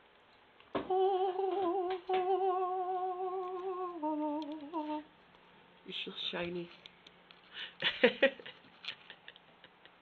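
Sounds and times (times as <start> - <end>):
person humming with vibrato: 0.8 - 5.1.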